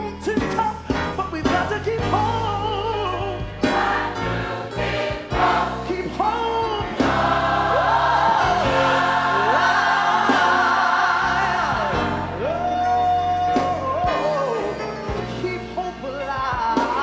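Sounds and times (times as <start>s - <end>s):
instrumental accompaniment: 0.0s - 17.0s
gospel choir singing: 3.1s - 14.8s.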